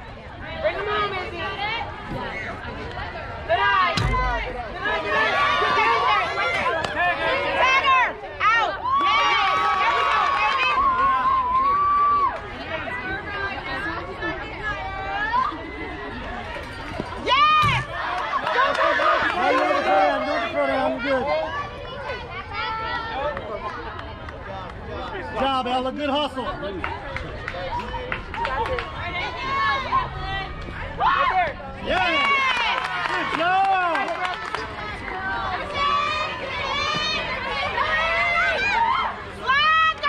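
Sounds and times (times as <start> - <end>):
voices calling and chattering: 0.0 - 40.0
children shouting and cheering: 27.7 - 40.0.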